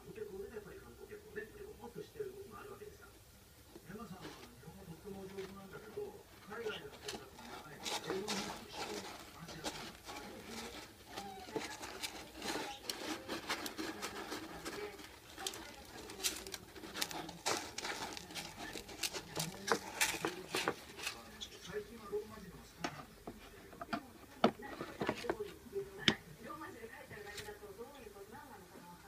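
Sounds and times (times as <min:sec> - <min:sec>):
kitten scratching cat litter: 0:03.8 - 0:26.2.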